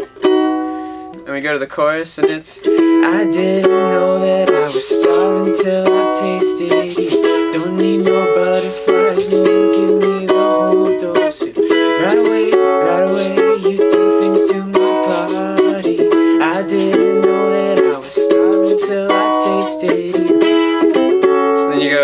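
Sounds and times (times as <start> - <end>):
ukulele strumming: 0.0 - 1.3, 2.1 - 22.0
man singing: 2.2 - 22.0.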